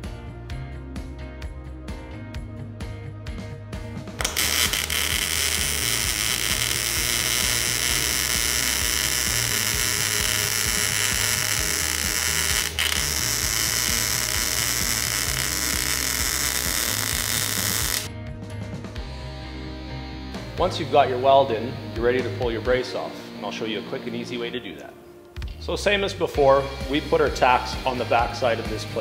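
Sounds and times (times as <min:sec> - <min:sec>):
welding arc sizzling: 0:04.2 - 0:18.1.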